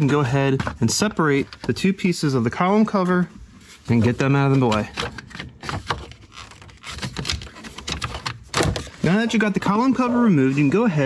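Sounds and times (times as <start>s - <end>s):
hard plastic clicks and scrapes: 4.0s - 9.1s.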